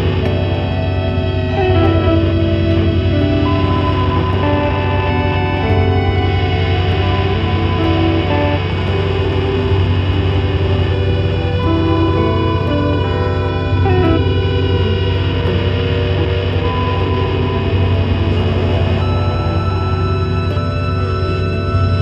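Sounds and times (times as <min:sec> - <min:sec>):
layered guitar tones: 0:00.0 - 0:22.0
steady low drone: 0:00.0 - 0:22.0.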